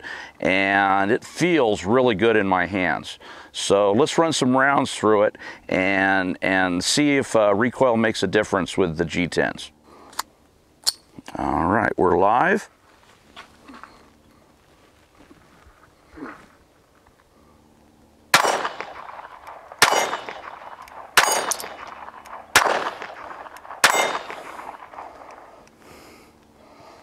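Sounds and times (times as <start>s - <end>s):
pistol shots: 18.3s - 25.6s.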